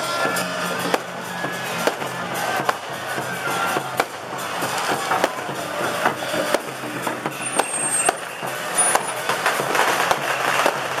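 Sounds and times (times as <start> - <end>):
firecrackers popping: 0.0 - 11.0.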